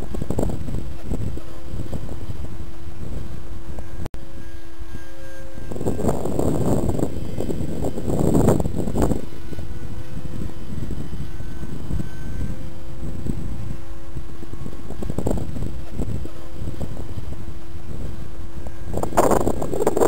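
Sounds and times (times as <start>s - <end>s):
model jet fan whine: 0.0s - 20.0s
wind buffeting microphone: 0.0s - 20.0s.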